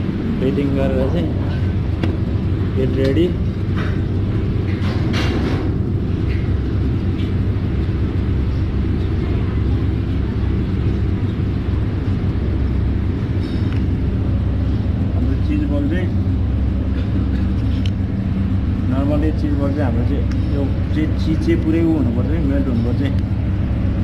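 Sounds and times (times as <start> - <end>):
low background rumble: 0.0 - 24.0.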